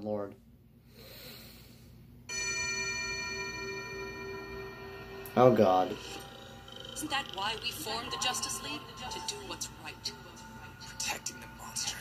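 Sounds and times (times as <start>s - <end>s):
sustained ringing tone: 2.3s - 12.0s.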